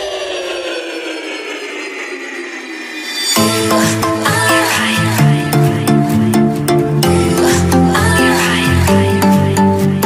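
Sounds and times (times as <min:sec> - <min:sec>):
falling pitch sweep effect: 0:00.0 - 0:07.3
deep bass: 0:00.0 - 0:10.0.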